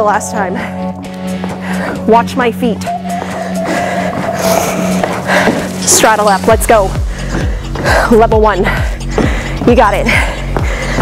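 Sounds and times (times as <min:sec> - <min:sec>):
upbeat workout music: 0:00.0 - 0:11.0.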